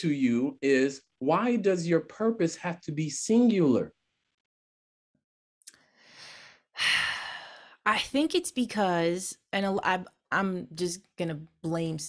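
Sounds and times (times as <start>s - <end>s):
woman speaking: 6.8s - 12.0s.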